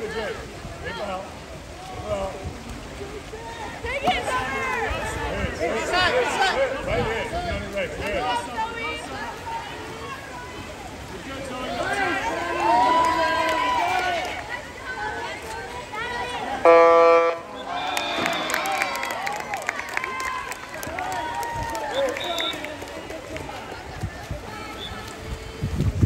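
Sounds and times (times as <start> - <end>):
people shouting: 3.4 - 7.3, 11.6 - 22.7
electronic game horn: 16.6 - 17.4.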